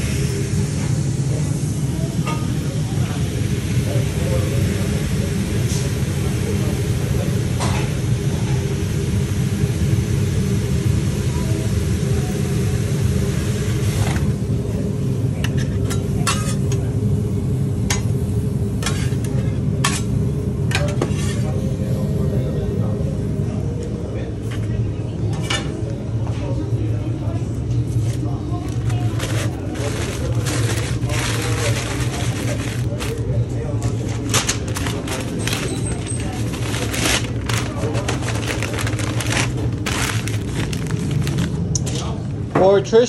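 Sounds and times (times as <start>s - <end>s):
kitchen equipment rumble: 0.0s - 8.8s, 13.5s - 42.6s
food steaming on griddle: 0.0s - 22.3s, 28.1s - 41.6s.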